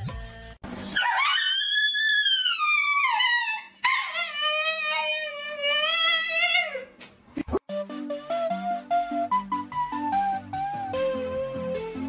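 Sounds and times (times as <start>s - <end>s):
dogs howling: 1.0s - 6.8s.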